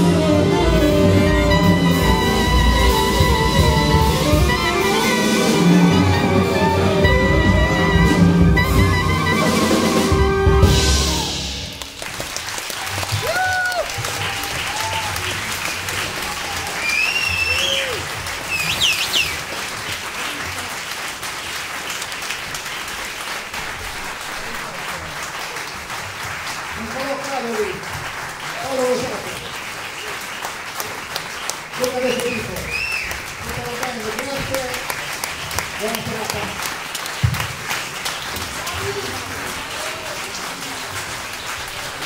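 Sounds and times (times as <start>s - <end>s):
audience applauding and cheering: 0.0s - 42.0s
audience shouting: 12.8s - 18.2s
shrill whistles: 16.8s - 19.4s, 32.0s - 33.2s.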